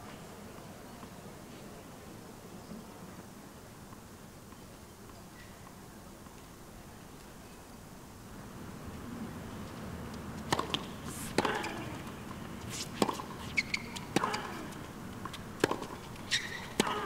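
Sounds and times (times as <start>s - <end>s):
low crowd murmur: 0.0s - 16.1s
tennis ball bouncing on hard court: 10.4s - 17.0s.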